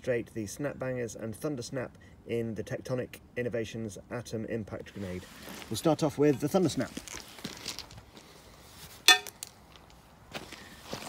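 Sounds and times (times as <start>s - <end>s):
metal grenade clinking on stone: 9.1s - 9.5s.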